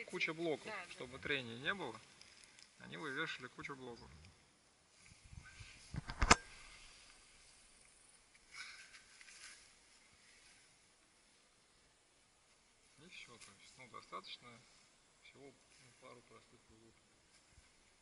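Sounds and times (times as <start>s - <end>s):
faint rustling: 0.0s - 18.0s.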